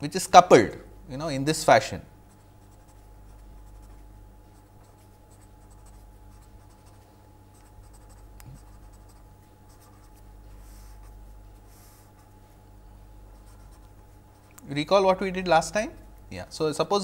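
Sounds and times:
low steady hum: 0:00.0 - 0:17.0
marker writing on paper: 0:07.6 - 0:12.4, 0:13.4 - 0:14.5.

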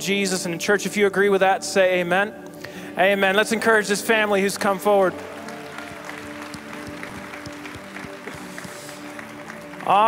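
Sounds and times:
crowd applauding: 0:04.6 - 0:10.0.

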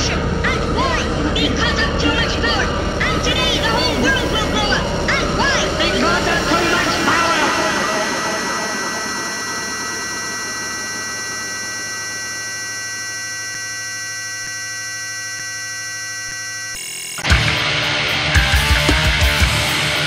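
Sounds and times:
warbling pitch glides: 0:00.0 - 0:16.7
ambient drone of held tones: 0:00.0 - 0:17.8.

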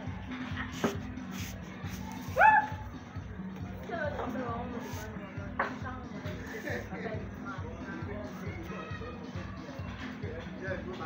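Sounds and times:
background music: 0:00.0 - 0:11.0
dog barking: 0:02.4 - 0:02.8.

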